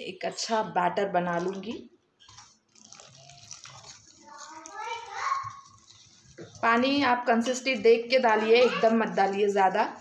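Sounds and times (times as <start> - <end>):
water trickling from a jug: 1.3 - 7.0.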